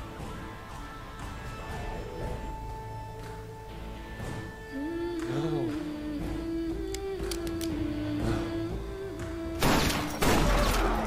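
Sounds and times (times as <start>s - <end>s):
pistol shots: 9.6s - 11.0s.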